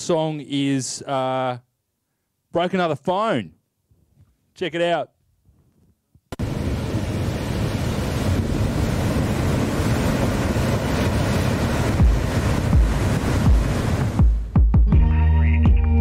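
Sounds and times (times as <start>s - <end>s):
waves breaking: 6.4s - 14.6s
deep bass thumps: 12.0s - 15.1s.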